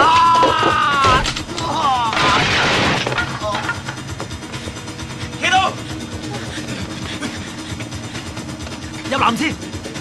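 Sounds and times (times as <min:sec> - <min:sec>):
man crying out: 0:00.0 - 0:02.4
body crashing into table: 0:02.1 - 0:03.6.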